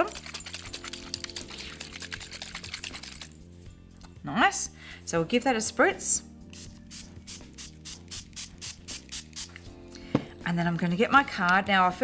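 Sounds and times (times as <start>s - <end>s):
faint background music: 0.0s - 12.0s
spray bottle hissing squirts: 6.6s - 9.7s.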